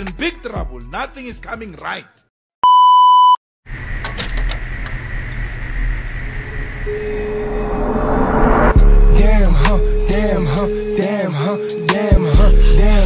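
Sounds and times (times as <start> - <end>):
electronic bleep tone: 2.6 - 3.4, 6.8 - 8.8.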